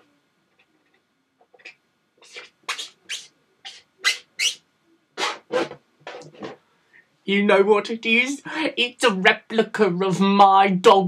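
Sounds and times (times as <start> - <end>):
marker rubbing on balloon: 1.5 - 4.6, 5.2 - 6.6.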